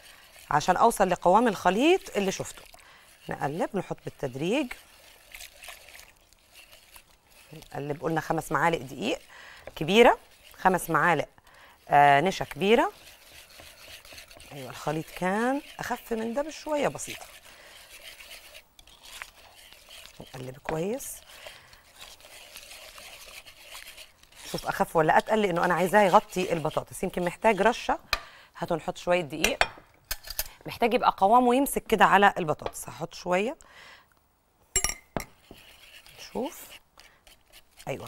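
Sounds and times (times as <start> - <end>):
wire whisk stirring batter: 0.0 - 29.6, 34.8 - 38.0
water trickling into a bowl: 4.8 - 7.8.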